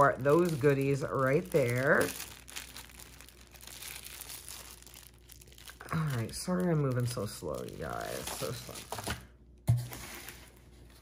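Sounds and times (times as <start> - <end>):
plastic wrapping crinkling: 0.0 - 11.0.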